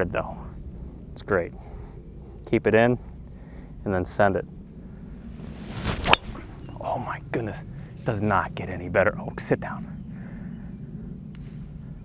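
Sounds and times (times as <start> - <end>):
low rumble: 4.4 - 8.9.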